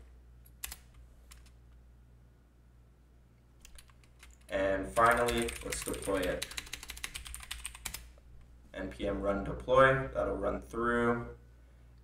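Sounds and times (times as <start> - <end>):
steady low hum: 0.0 - 12.0
computer keyboard keystrokes: 0.4 - 1.5, 3.6 - 8.1.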